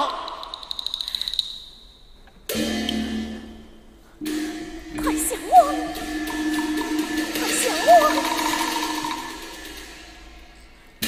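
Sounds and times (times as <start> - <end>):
opera orchestra sustained notes: 4.2 - 10.6.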